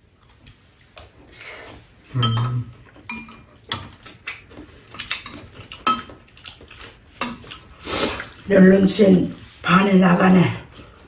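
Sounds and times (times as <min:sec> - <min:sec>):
spoons clinking on ceramic bowls: 0:02.2 - 0:04.0, 0:05.8 - 0:06.1.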